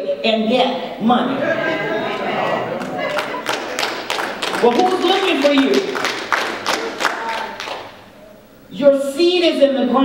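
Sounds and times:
murmur of voices: 0:00.8 - 0:08.6
congregation clapping: 0:01.6 - 0:08.1.

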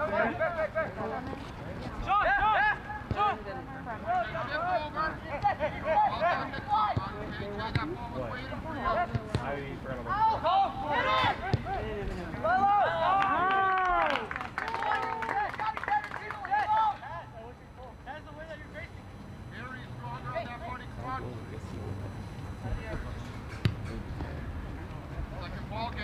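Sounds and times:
players and onlookers shouting: 0:02.0 - 0:03.4, 0:10.1 - 0:17.4
low background hum: 0:07.3 - 0:26.0.

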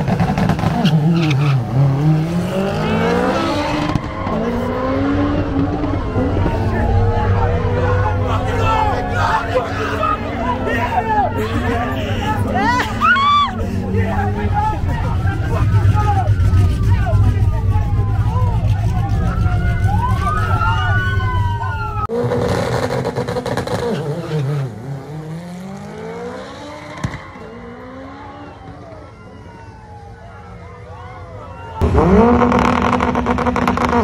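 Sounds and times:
car engine accelerating: 0:00.0 - 0:29.7, 0:31.8 - 0:34.0
car engines idling: 0:00.0 - 0:34.0
crowd voices: 0:00.8 - 0:22.1, 0:25.0 - 0:34.0
police siren wailing: 0:01.2 - 0:22.1, 0:26.0 - 0:33.9.

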